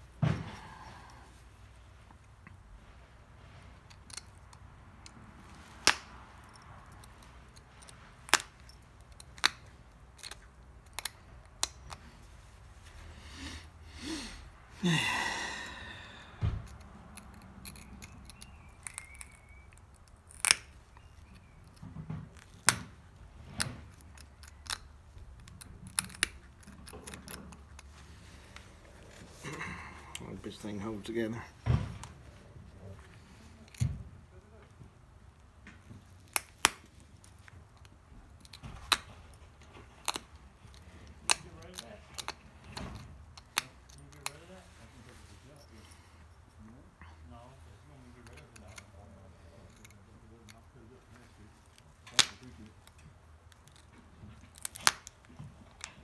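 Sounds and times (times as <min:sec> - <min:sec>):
pressure flaker clicking on stone: 0:03.9 - 0:12.2, 0:16.6 - 0:28.7, 0:36.2 - 0:44.4, 0:51.6 - 0:56.0
stone flakes snapping clicks: 0:16.7 - 0:21.8, 0:54.5 - 0:56.0.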